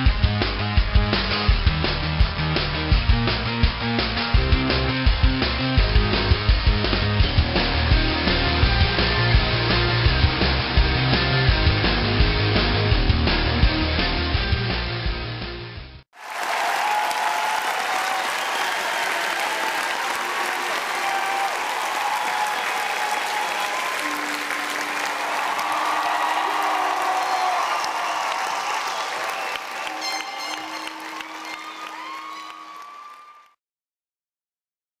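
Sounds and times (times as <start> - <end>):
rock music: 0.0 - 15.9
applause: 16.1 - 33.6
held musical notes: 29.7 - 32.9.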